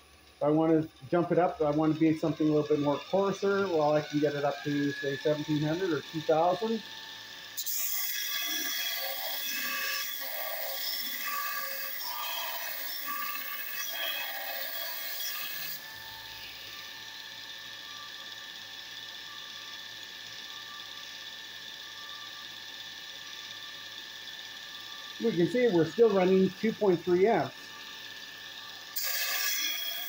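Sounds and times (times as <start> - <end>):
grinder motor whine: 0.0 - 30.0
metal grinding on belt grinder: 0.2 - 30.0.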